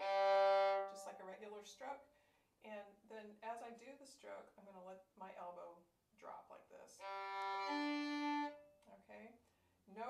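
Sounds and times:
violin bowed on open strings: 0:00.0 - 0:01.2, 0:07.0 - 0:08.7.

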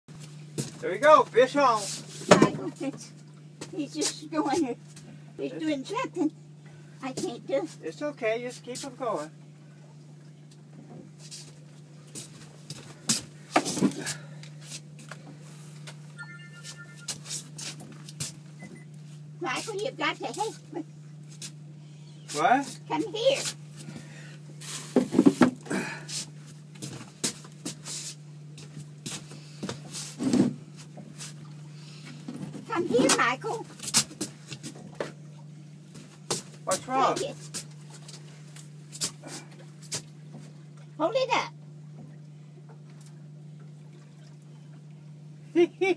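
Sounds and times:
outboard motor humming: 0:00.1 - 0:45.9.

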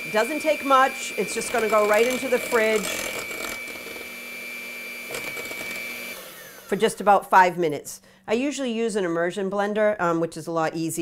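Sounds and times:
electric hand mixer whining: 0:00.0 - 0:07.0.

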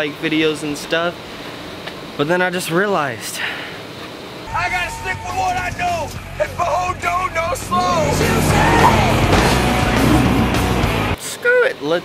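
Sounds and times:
soundtrack music: 0:04.5 - 0:11.2
car engine running hard: 0:07.6 - 0:11.2.

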